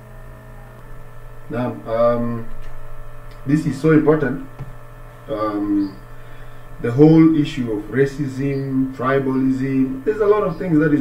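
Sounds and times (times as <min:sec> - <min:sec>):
low electrical hum: 0:00.0 - 0:11.0
man speaking: 0:01.5 - 0:02.6, 0:03.4 - 0:04.6, 0:05.3 - 0:06.0, 0:06.8 - 0:11.0.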